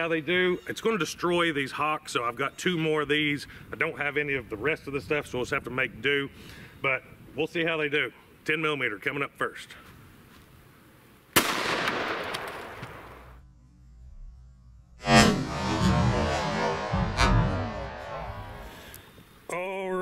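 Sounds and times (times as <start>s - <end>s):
pistol shot: 11.4s - 13.2s
drawn out loud report: 15.0s - 19.3s.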